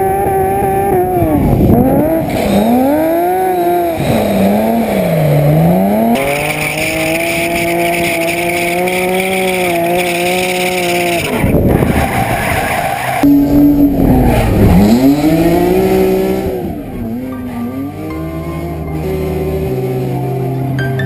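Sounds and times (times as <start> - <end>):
car engine revving: 0.0 - 21.0.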